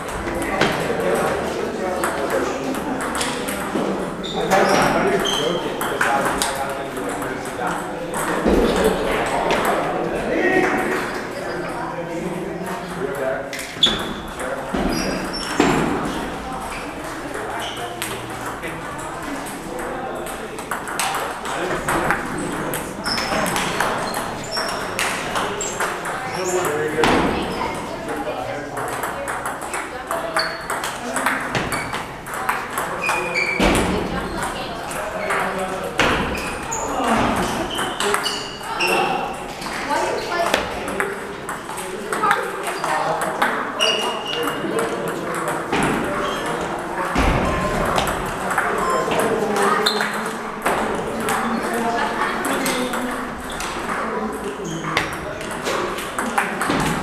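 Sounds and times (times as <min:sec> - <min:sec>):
voices chattering: 0:00.0 - 0:57.0
table tennis balls clicking: 0:02.0 - 0:03.9, 0:16.6 - 0:57.0
distant ping pong balls pinging: 0:13.9 - 0:39.6.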